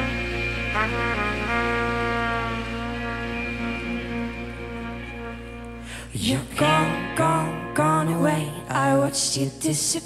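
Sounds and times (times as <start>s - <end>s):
trumpet: 0.0s - 7.9s
live band sustained chord: 0.0s - 9.7s.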